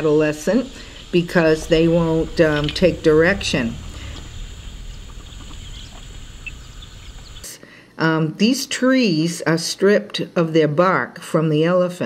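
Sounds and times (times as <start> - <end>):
low rumble: 0.0 - 7.4
faint bird chirps: 3.8 - 7.4.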